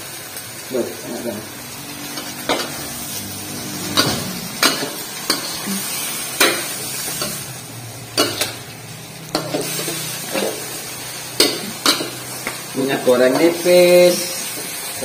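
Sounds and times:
sizzle of stir-frying: 0.0s - 15.0s.

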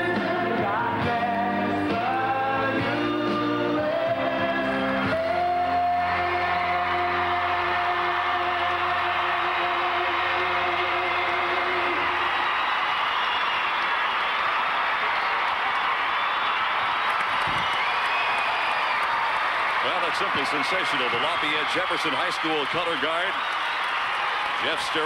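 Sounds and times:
choral music: 0.0s - 12.3s
crowd applauding and cheering: 0.0s - 25.0s.

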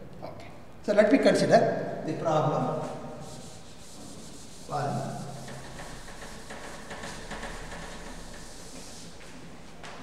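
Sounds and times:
duster rubbing on blackboard: 2.8s - 9.8s.

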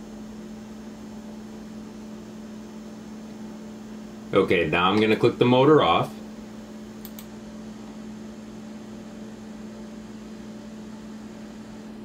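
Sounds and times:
cooling fans humming: 0.0s - 12.0s
faint click: 7.0s - 7.3s.

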